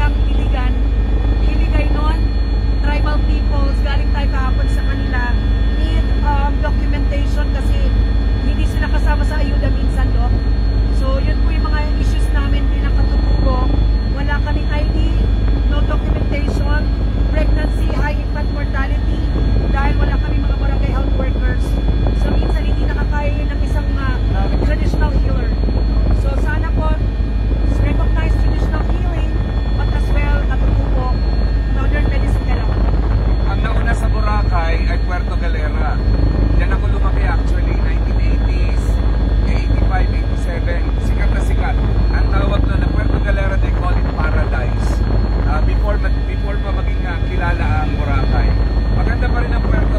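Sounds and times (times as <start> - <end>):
helicopter engine and rotor drone: 0.0 - 49.9
whining tones: 0.0 - 49.9.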